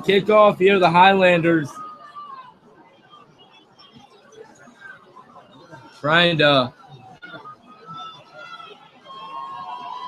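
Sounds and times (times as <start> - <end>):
faint background voices: 1.6 - 10.0.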